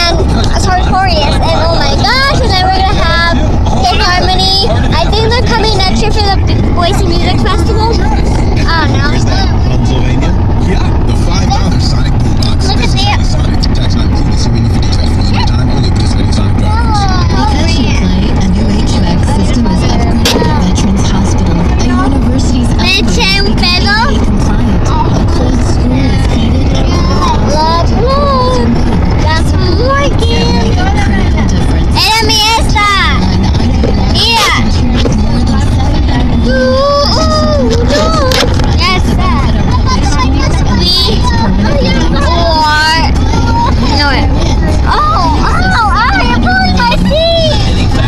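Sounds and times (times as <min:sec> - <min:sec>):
car rumble from inside: 0:00.0 - 0:48.0.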